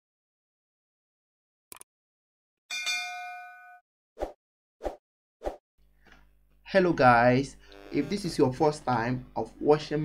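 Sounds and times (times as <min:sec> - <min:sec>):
notification bell ding: 0:02.7 - 0:03.8.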